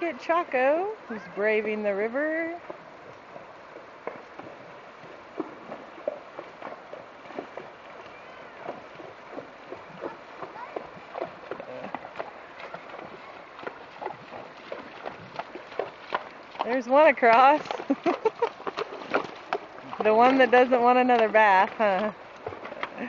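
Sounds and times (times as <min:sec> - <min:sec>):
flowing water rushing: 0:00.0 - 0:23.0
hooves splashing on water and stones: 0:00.0 - 0:23.0.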